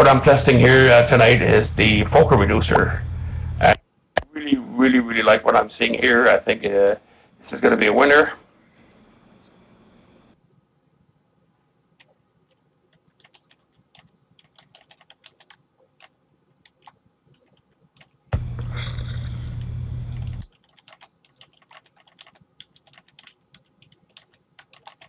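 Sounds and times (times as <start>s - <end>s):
computer keyboard typing: 12.0s - 18.4s, 19.3s - 25.0s.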